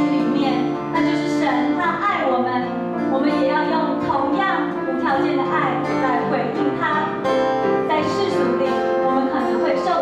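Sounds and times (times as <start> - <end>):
acoustic guitar: 0.0 - 10.0
piano: 0.0 - 10.0.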